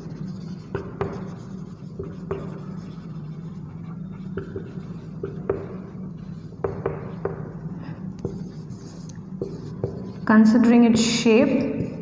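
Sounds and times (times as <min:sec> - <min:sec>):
marker pen writing on whiteboard: 0:00.0 - 0:12.0
steady low hum: 0:00.0 - 0:12.0.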